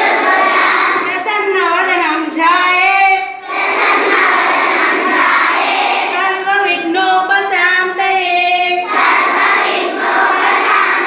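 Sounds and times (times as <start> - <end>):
children chanting in unison: 0.0 - 1.5, 3.3 - 6.5, 8.7 - 11.0.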